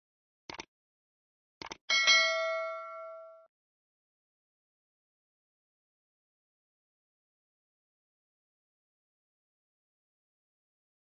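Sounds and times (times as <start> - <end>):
notification bell ding: 1.9 - 3.5.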